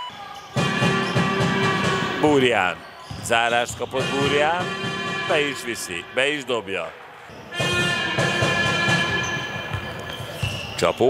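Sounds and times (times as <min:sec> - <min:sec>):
held chord of steady tones: 0:04.0 - 0:06.6.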